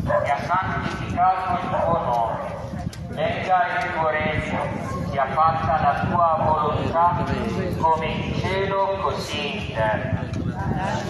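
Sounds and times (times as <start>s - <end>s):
crowd murmur and shuffling: 0.0s - 11.0s
person reciting a prayer over loudspeaker: 0.0s - 11.0s.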